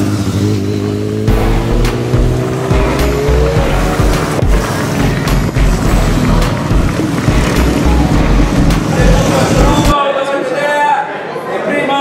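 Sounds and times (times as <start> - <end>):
racing motorcycles passing: 0.0 - 9.9.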